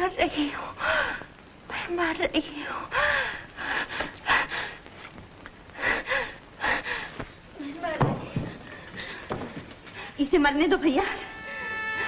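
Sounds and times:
woman moaning cries: 0:11.2 - 0:12.0.

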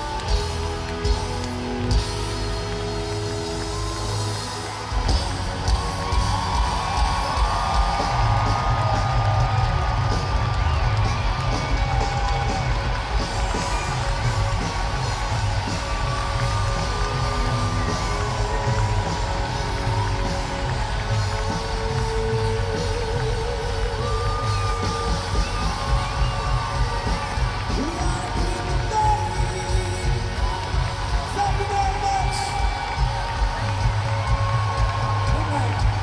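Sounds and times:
crowd cheering: 0:00.0 - 0:36.0
live rock band playing: 0:00.0 - 0:36.0.

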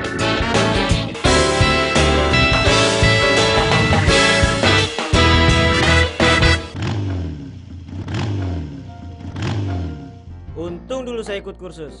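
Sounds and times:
motorcycle engine revving: 0:00.0 - 0:10.3.

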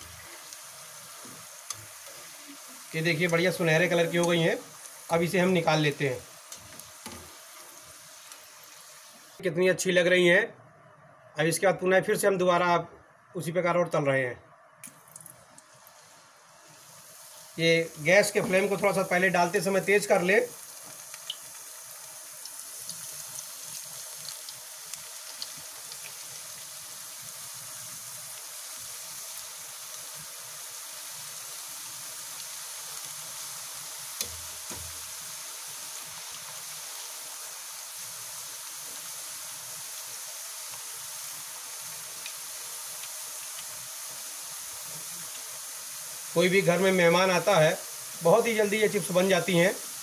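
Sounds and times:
crackles and pops: 0:00.0 - 0:05.1, 0:06.5 - 0:07.4, 0:20.6 - 0:26.8, 0:34.1 - 0:35.1, 0:39.8 - 0:45.6
potato slices sizzling in oil: 0:00.0 - 0:10.2, 0:14.8 - 0:50.0.

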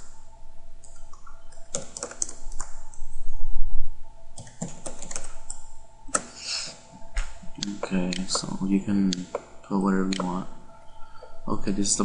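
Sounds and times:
computer keyboard typing: 0:00.8 - 0:03.0, 0:04.4 - 0:06.4, 0:07.5 - 0:10.4.

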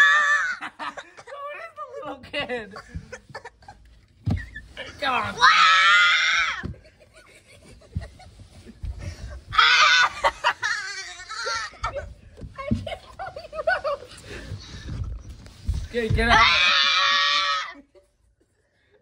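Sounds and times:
rustling: 0:02.8 - 0:17.2
person screaming: 0:09.6 - 0:10.2, 0:16.3 - 0:17.8
low handling thumps: 0:11.8 - 0:16.5.

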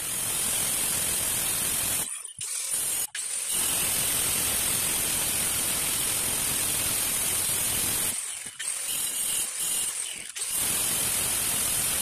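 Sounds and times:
angle grinder cutting stone: 0:00.0 - 0:12.0.

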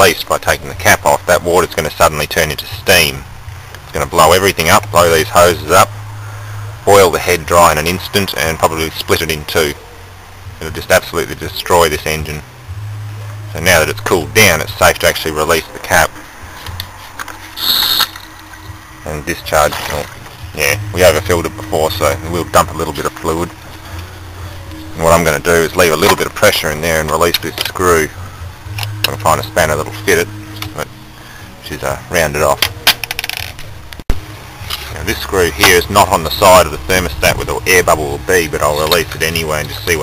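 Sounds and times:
cap clicks: 0:16.8 - 0:18.7
pressure hissing from tank: 0:17.6 - 0:18.2.

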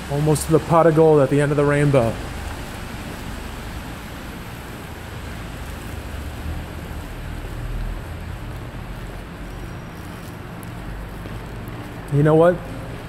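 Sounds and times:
parking garage rumble with hiss: 0:00.0 - 0:13.0.

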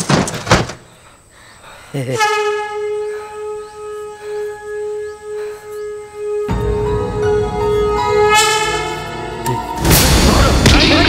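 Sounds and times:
sustained wind-like film score note: 0:02.7 - 0:10.7.

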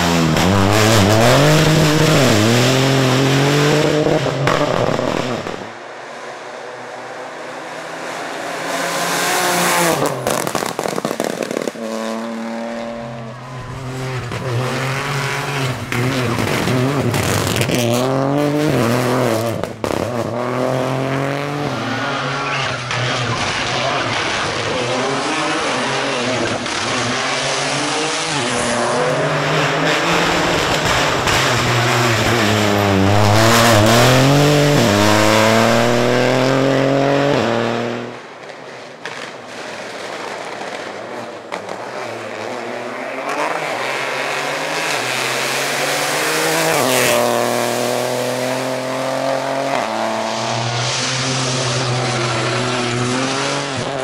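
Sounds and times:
rally car engine revving: 0:00.0 - 0:38.3, 0:39.1 - 0:54.0.

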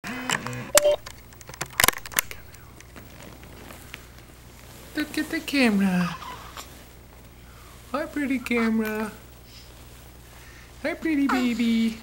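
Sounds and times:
low steady hum: 0:00.1 - 0:12.0
camcorder handling clicks and knocks: 0:00.3 - 0:02.4
short beep-like tones: 0:00.7 - 0:01.0.

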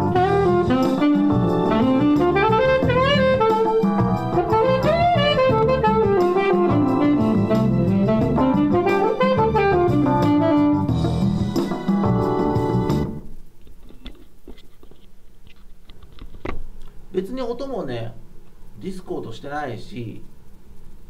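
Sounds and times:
saxophone improvising: 0:00.0 - 0:13.3
keyboard and bass backing track: 0:00.0 - 0:14.1.

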